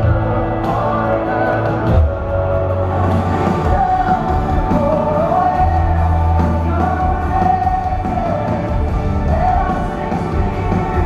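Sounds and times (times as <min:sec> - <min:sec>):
live band music: 0:00.0 - 0:11.0
steady bass: 0:00.0 - 0:11.0.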